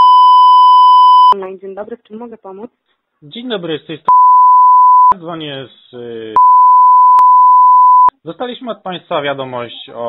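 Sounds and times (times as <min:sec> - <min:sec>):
censor bleep: 0:00.0 - 0:01.4, 0:04.1 - 0:05.2, 0:06.4 - 0:08.1.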